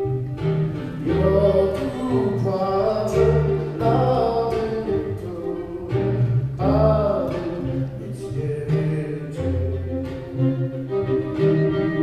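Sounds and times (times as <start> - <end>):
bass line held notes: 0.0 - 12.0
string accompaniment: 0.0 - 12.0
person singing: 0.9 - 10.0.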